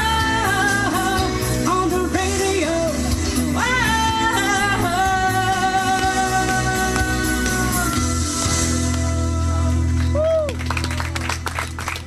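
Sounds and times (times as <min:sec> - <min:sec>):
woman singing into a microphone: 0:00.0 - 0:08.4
backing music with low bass: 0:00.0 - 0:12.0.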